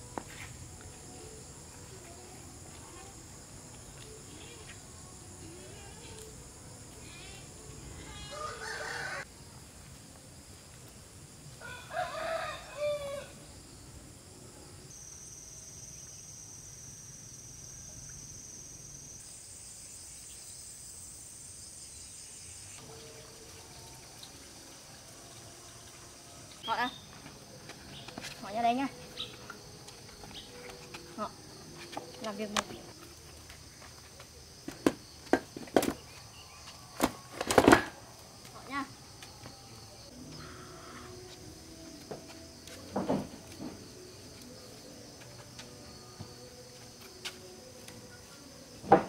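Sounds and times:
insects droning: 0.0 - 49.0
rooster crowing: 8.2 - 9.3, 11.6 - 13.4.

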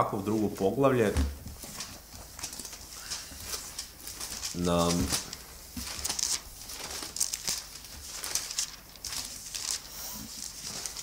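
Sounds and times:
pages being leafed through: 1.4 - 11.0
paper clicks: 1.7 - 11.0.

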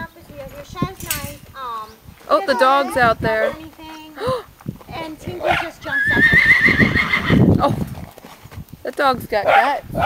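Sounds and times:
hooves thudding on dirt: 0.3 - 10.0
horse whinnying: 5.8 - 7.5.

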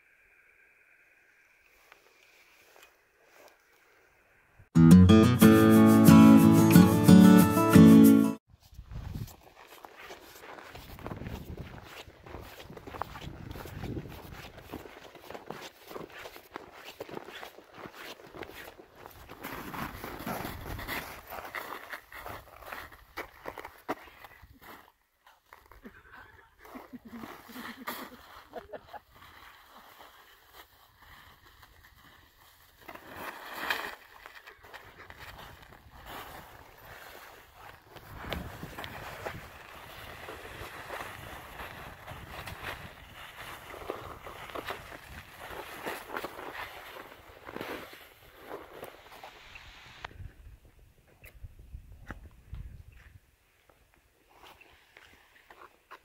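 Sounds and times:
footsteps crunching on snow: 8.5 - 26.0, 26.6 - 50.0
clothing and backpacks rustling: 8.6 - 24.3, 26.6 - 50.0.

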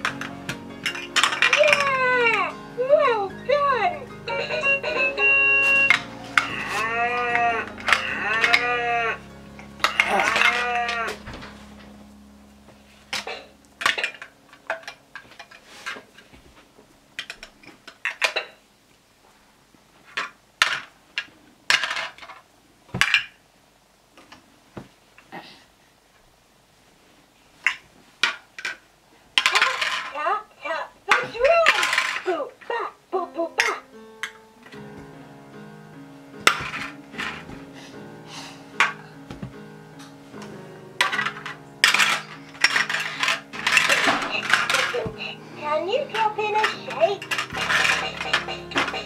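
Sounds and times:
plastic blocks knocking: 0.0 - 2.4, 20.2 - 22.4, 29.4 - 30.2, 31.1 - 32.4, 36.4 - 37.6, 41.0 - 45.4, 46.0 - 49.0
electronic toy melody: 0.9 - 11.1, 42.9 - 49.0
person speaking: 1.4 - 9.2, 43.6 - 49.0.

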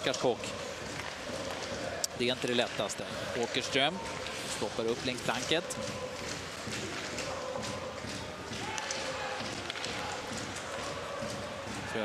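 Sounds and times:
arena crowd noise: 0.0 - 12.0
hockey sticks and skates on ice: 0.0 - 12.0.

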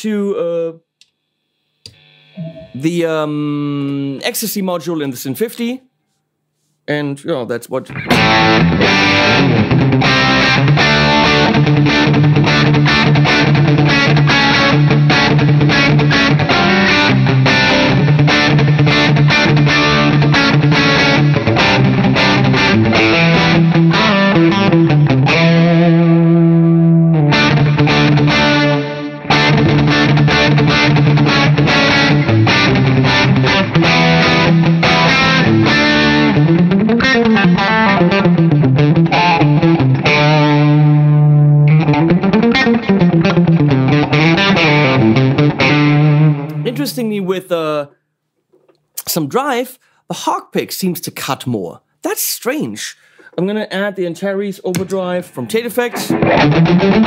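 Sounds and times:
distorted electric guitar: 1.6 - 4.1, 7.9 - 47.1, 54.7 - 57.0.

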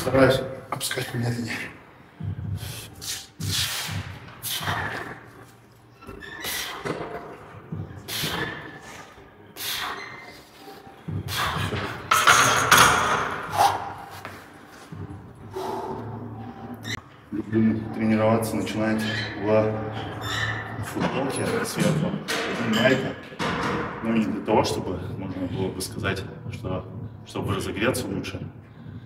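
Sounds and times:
person breathing hard: 15.5 - 16.4.

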